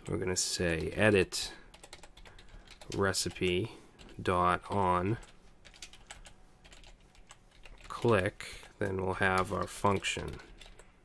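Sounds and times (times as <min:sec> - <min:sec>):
typing on computer keyboard: 0:01.7 - 0:08.2, 0:08.8 - 0:11.0.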